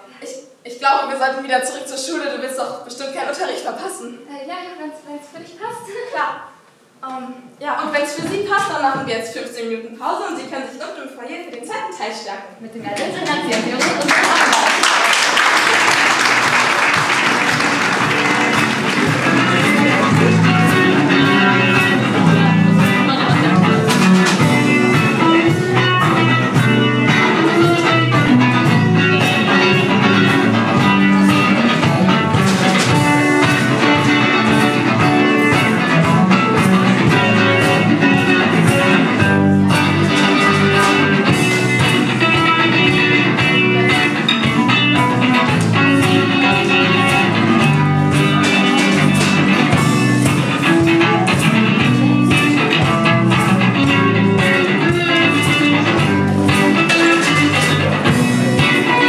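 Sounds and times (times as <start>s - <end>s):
electric guitar: 13.2s - 59.0s
live band playing: 15.0s - 59.0s
electric bass: 16.8s - 59.0s.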